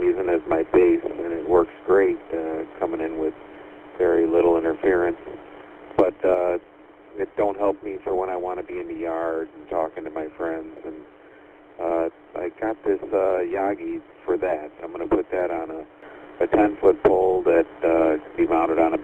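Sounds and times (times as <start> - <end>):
man talking over radio: 0.0 - 3.4, 4.0 - 5.4, 6.0 - 6.6, 7.2 - 11.0, 11.8 - 19.0.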